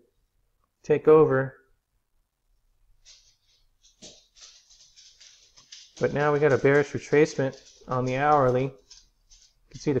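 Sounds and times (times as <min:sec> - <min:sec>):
faint soft clicks and rustles: 0:02.9 - 0:10.0.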